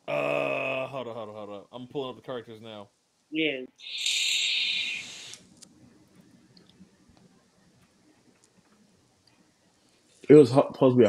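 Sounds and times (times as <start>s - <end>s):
air hissing through a vape: 3.8s - 5.6s.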